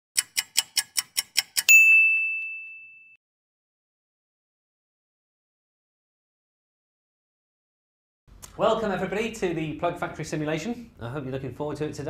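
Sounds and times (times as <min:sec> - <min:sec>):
quick ticks: 0:00.2 - 0:01.7
bright ding: 0:01.7 - 0:03.2.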